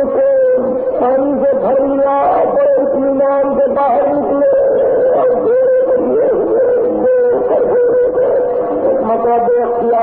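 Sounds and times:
voices wailing: 0.0s - 10.0s.

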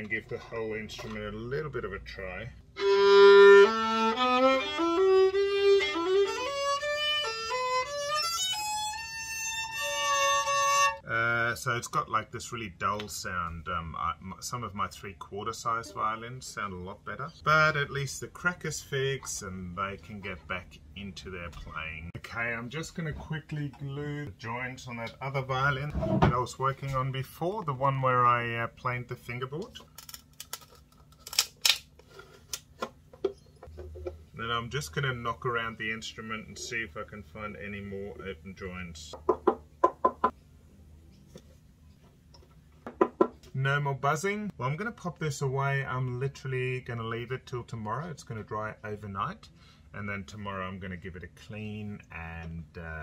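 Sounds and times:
violin single bowed notes: 2.8s - 11.0s.

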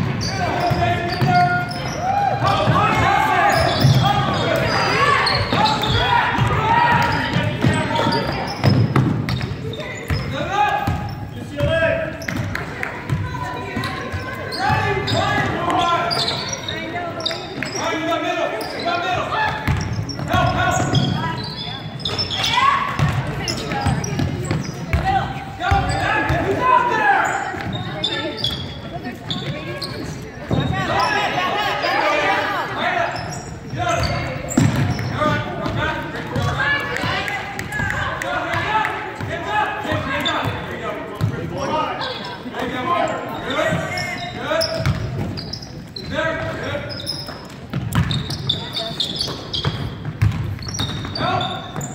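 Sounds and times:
voices echoing in gym: 0.0s - 51.9s.

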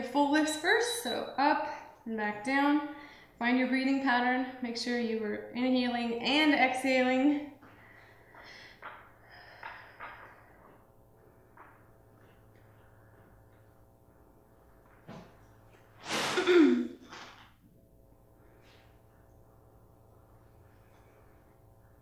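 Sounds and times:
faint steady hum: 0.0s - 22.0s
woman breathing effortfully: 7.6s - 11.0s.

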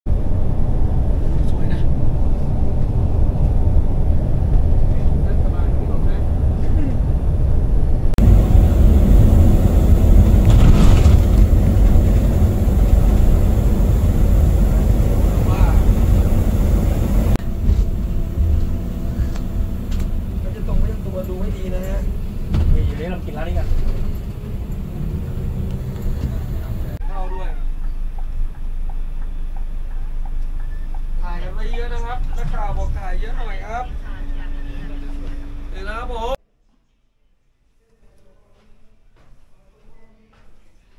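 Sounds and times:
bus road and engine rumble: 0.1s - 36.4s.

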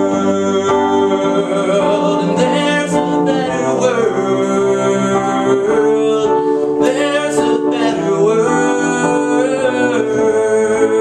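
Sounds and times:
electric keyboard chords: 0.0s - 11.0s
man singing: 0.0s - 11.0s.

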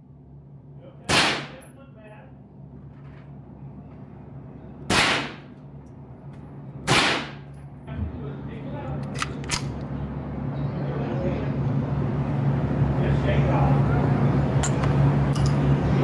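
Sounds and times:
low steady hum: 0.0s - 16.0s
rifle shots: 1.1s - 1.6s, 4.9s - 5.5s, 6.8s - 7.5s
rifle action metallic clicks: 9.0s - 9.8s.

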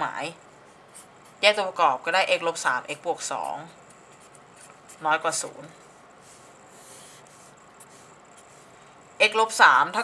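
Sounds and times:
person speaking: 0.0s - 10.0s
marker scratching on paper: 0.4s - 1.8s, 2.8s - 8.8s.

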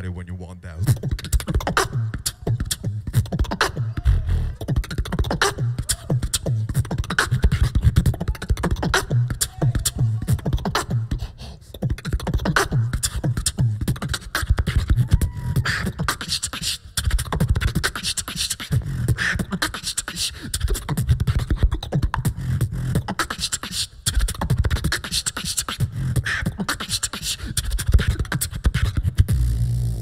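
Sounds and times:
pitched vocal glides: 0.0s - 29.2s
beatbox kick and snare hits: 0.8s - 30.0s
pulsing low bass: 29.3s - 30.0s.

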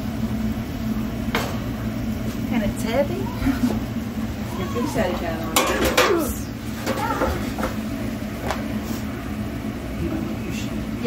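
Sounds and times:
steady low hum: 0.0s - 11.0s
dishes and cookware clattering: 5.5s - 7.8s.

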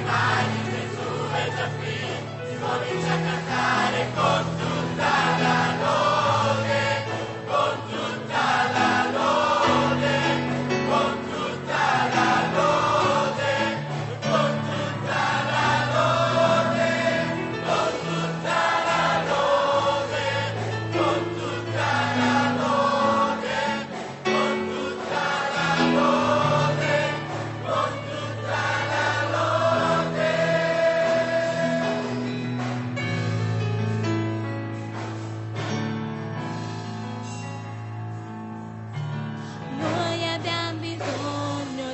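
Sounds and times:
choir singing worship song: 0.0s - 34.0s, 39.0s - 41.9s.

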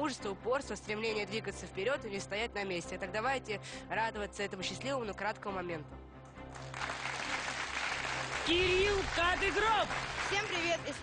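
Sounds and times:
background music: 0.0s - 11.0s
audience applause: 6.5s - 11.0s.

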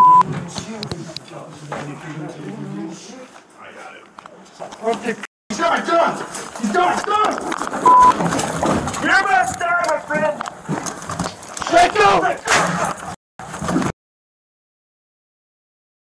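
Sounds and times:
steady bleep tone: 0.0s - 0.2s, 7.8s - 8.2s
raised voices: 11.6s - 12.9s.

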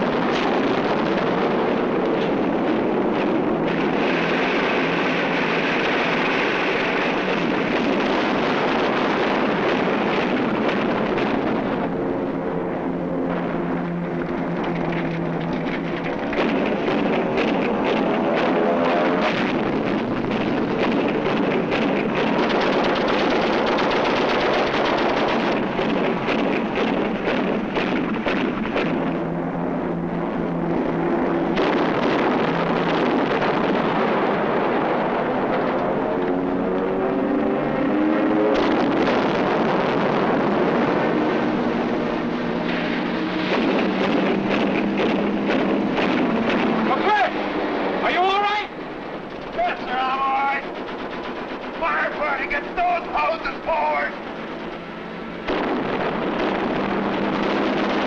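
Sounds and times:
explosions: 0.0s - 36.3s, 38.3s - 58.0s
propeller aircraft engine passing: 0.0s - 58.0s
gunfire rattle: 19.3s - 29.1s, 50.6s - 58.0s.

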